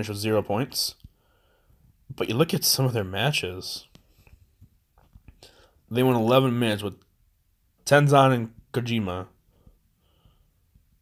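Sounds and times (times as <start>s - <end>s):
man talking: 0.0s - 1.1s, 2.1s - 4.0s, 5.9s - 7.0s, 7.8s - 9.4s.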